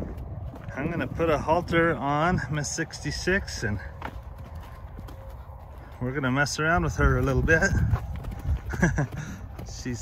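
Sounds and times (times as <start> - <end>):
hoof strikes on dirt: 0.0 - 10.0.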